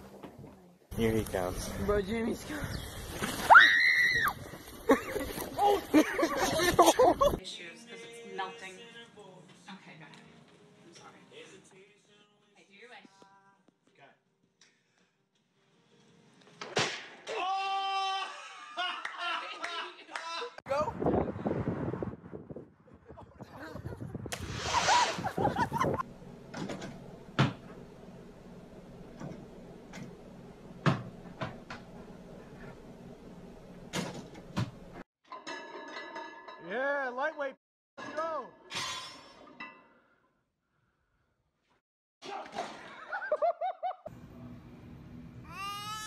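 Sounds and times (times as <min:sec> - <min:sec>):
sudden smack: 0:16.6 - 0:17.3.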